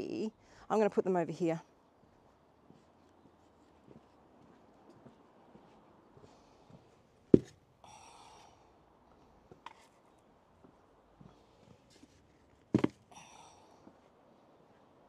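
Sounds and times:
plant pots knocking on stone: 0:07.4 - 0:07.6, 0:12.7 - 0:13.0.

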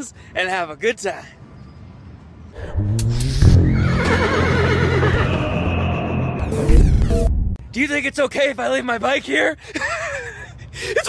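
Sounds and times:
horse whinnying: 0:03.0 - 0:06.0.

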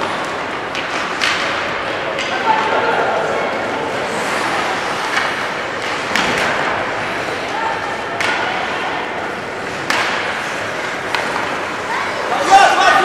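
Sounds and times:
skates on ice: 0:00.0 - 0:13.0
hockey stick hitting puck: 0:00.1 - 0:02.8, 0:04.4 - 0:07.4, 0:08.0 - 0:11.8.

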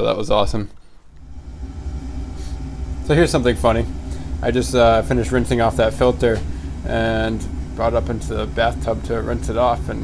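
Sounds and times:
faint hum: 0:00.0 - 0:10.0
low steady rumble: 0:00.8 - 0:10.0.

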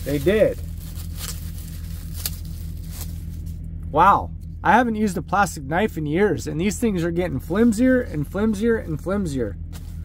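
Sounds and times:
paper wrapping rustling: 0:00.0 - 0:03.6
low background hum: 0:00.0 - 0:10.0.

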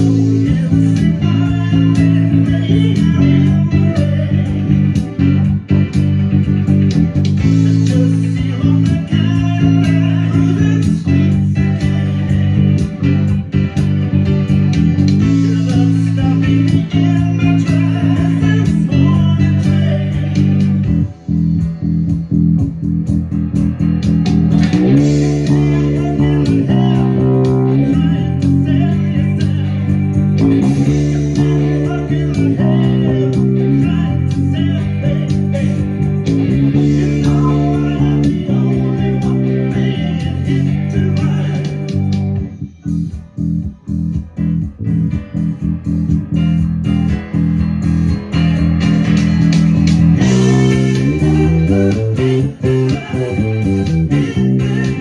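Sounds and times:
electric bass played fingerstyle: 0:00.0 - 0:55.0
rock band recording: 0:00.0 - 0:55.0.

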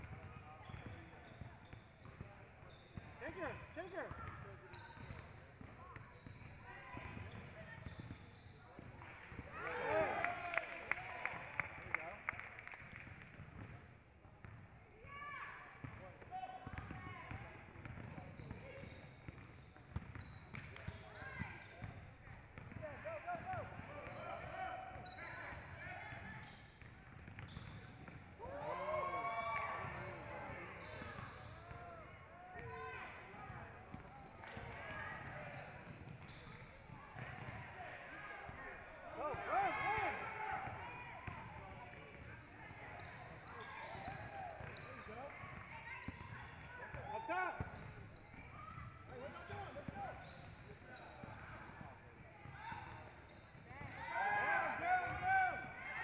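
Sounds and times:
sneakers squeaking on gym floor: 0:00.0 - 0:09.7, 0:13.6 - 0:14.6, 0:16.7 - 0:55.7.

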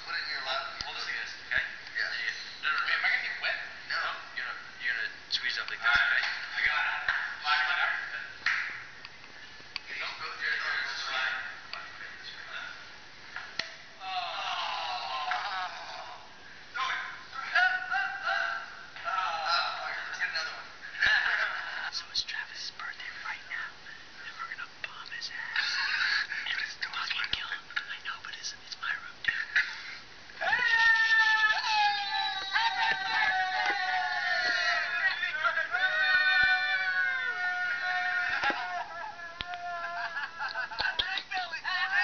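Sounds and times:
faint hushed voices: 0:14.0 - 0:42.0.

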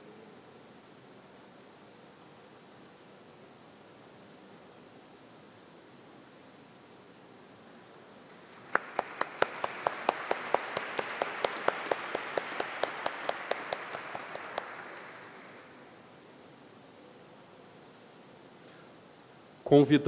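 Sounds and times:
close loud hand claps: 0:08.3 - 0:15.8
audience applauding: 0:08.3 - 0:15.9.

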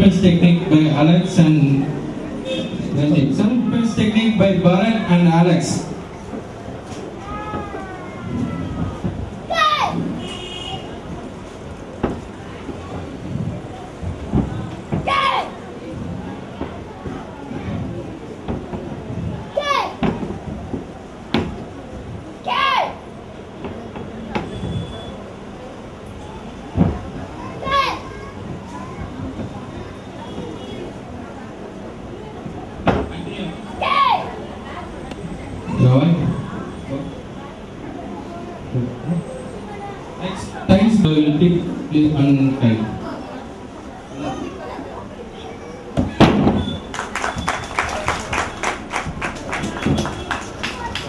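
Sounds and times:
murmur of children's voices: 0:00.0 - 0:51.0
child's high-pitched shout: 0:07.2 - 0:08.9, 0:09.5 - 0:10.0, 0:15.1 - 0:15.6, 0:19.6 - 0:20.0, 0:22.5 - 0:23.0, 0:27.5 - 0:28.4, 0:33.8 - 0:34.4
loud thud: 0:46.0 - 0:46.7.

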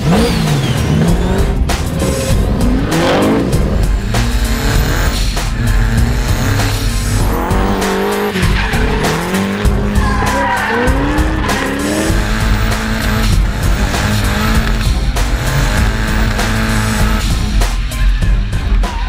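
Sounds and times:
car engines revving: 0:00.0 - 0:18.8
background music with steady beat: 0:00.0 - 0:19.0
tyres squealing: 0:04.2 - 0:17.2.

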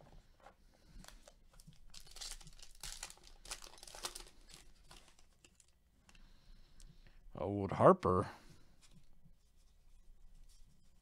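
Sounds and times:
wrapper crinkling and tearing: 0:01.0 - 0:05.8.

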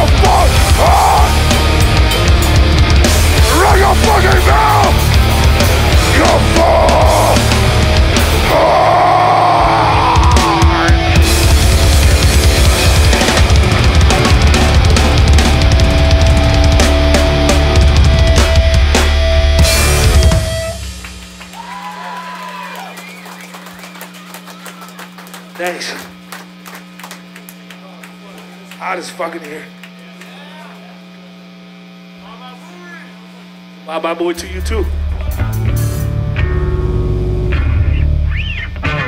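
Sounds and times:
shouted vocal: 0:00.0 - 0:01.5, 0:03.4 - 0:05.1, 0:06.0 - 0:07.5, 0:08.4 - 0:11.2, 0:21.6 - 0:23.0
punk band playing live: 0:00.0 - 0:22.6, 0:34.9 - 0:39.0
electrical hum from amplifiers: 0:00.0 - 0:39.0.

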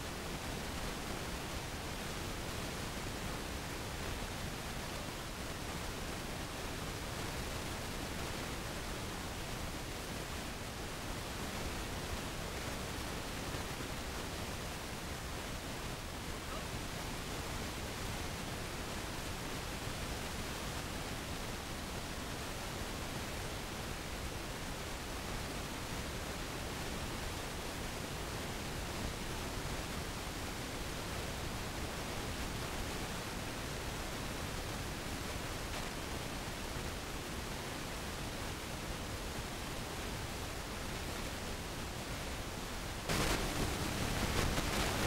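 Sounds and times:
tape hiss: 0:00.0 - 0:45.0.

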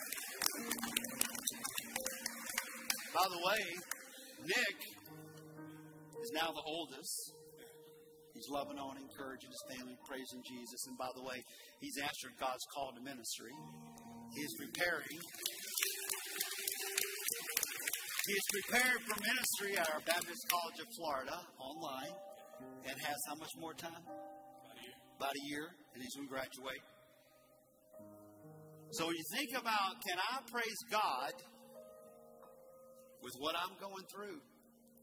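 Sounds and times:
people clapping: 0:00.0 - 0:05.0, 0:14.4 - 0:20.8.

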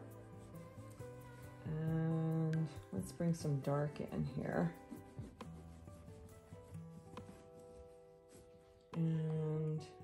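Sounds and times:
quiet background music: 0:00.0 - 0:10.0
pastel rubbing on paper: 0:00.1 - 0:01.6, 0:04.2 - 0:09.0.

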